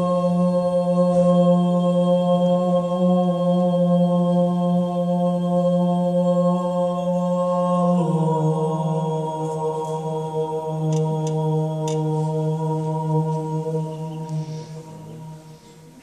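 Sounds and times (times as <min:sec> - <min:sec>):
chant-like low drone: 0:00.0 - 0:15.8.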